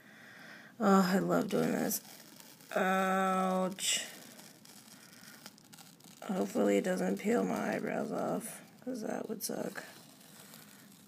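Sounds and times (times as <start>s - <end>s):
peel-off mask tearing: 0.8s - 11.0s.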